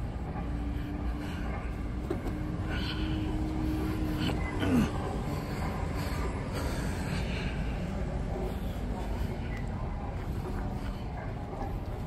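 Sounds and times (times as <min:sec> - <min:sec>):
low traffic rumble: 0:00.0 - 0:12.0
motor vehicle engine: 0:00.0 - 0:12.0.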